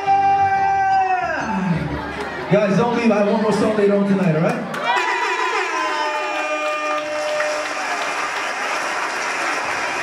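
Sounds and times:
audience applause clatter: 4.2s - 10.0s.

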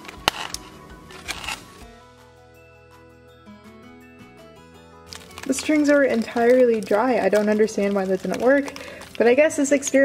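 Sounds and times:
balloon popping: 0.0s - 1.8s
light background music: 0.0s - 10.0s.

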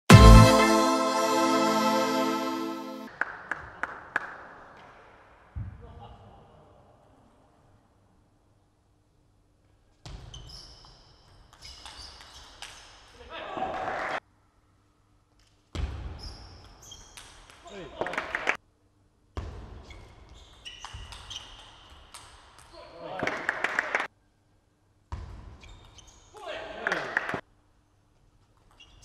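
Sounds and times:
shoes squeaking on floor: 10.0s - 12.9s, 16.2s - 17.2s, 19.8s - 21.8s, 25.5s - 26.4s, 28.7s - 29.0s.

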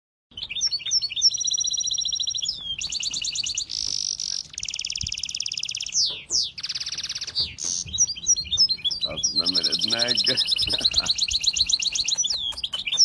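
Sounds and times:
finch singing: 0.3s - 13.0s.

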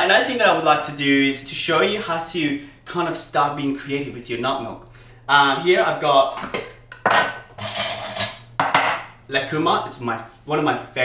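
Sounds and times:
kitchen utensils knocking: 6.4s - 9.1s
jar lid scraping grind: 7.5s - 8.4s.

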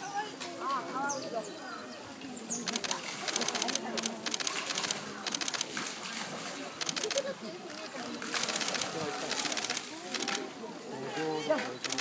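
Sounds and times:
murmur of voices: 0.0s - 12.0s
water splashing into pool: 2.8s - 10.6s.

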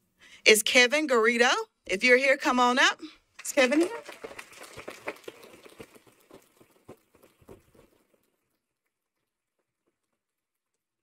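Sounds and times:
audience applauding: 3.4s - 8.1s.

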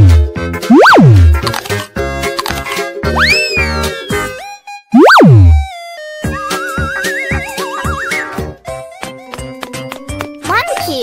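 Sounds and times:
cartoon swoop: 0.7s - 1.3s, 3.2s - 4.4s, 5.0s - 5.7s.

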